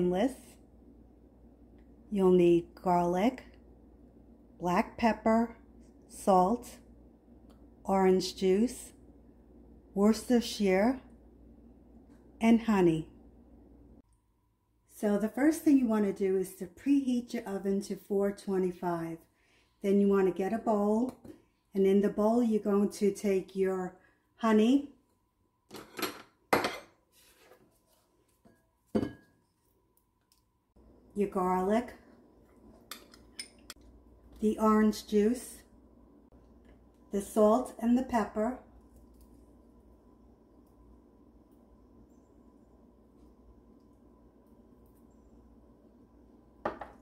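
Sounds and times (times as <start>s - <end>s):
glassware knocking on counter: 46.6s - 47.0s.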